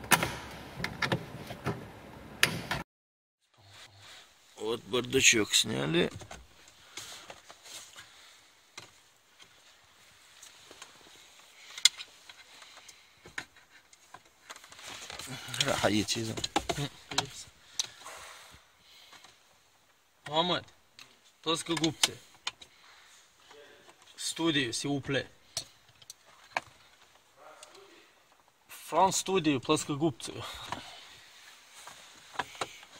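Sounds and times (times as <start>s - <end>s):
person speaking: 4.6s - 6.2s, 15.2s - 17.5s, 28.7s - 31.0s.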